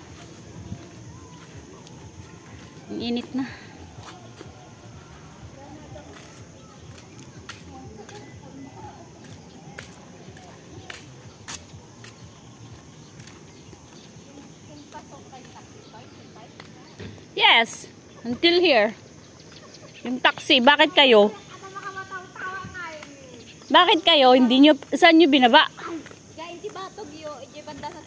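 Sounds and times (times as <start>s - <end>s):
faint distant voices: 0.0s - 28.0s
footsteps on paved path: 0.0s - 28.0s
sandals slapping road: 0.0s - 28.0s.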